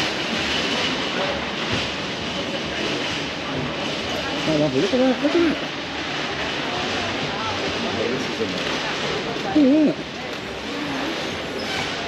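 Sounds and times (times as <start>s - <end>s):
rushing street noise: 0.0s - 12.0s
faint voices: 0.8s - 12.0s.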